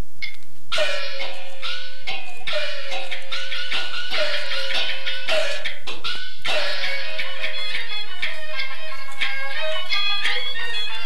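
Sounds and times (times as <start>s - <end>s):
record hum: 0.0s - 11.0s
opera accompaniment: 0.7s - 9.6s.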